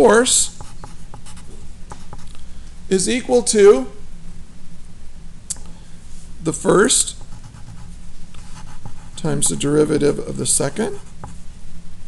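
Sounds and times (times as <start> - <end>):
faint low hum: 0.0 - 12.0
pencil writing on paper: 0.6 - 2.2, 7.2 - 9.6.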